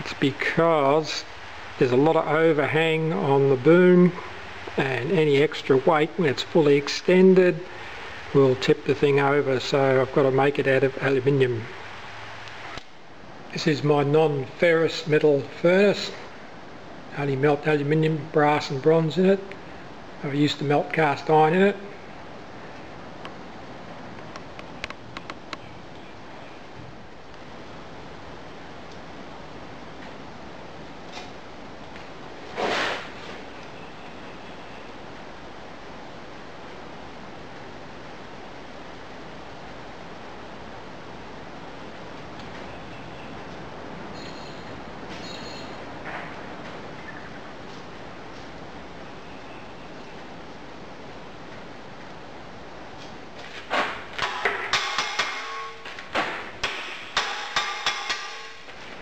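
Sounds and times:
sharp metallic clink: 0:44.2 - 0:45.8, 0:54.2 - 0:55.9, 0:56.6 - 0:58.6.

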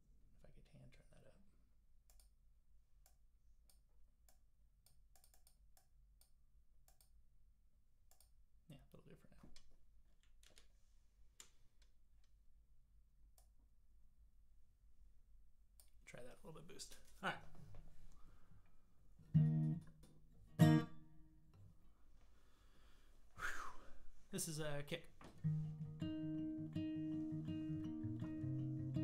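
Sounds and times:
computer mouse and keyboard clicks: 0:04.9 - 0:05.6.

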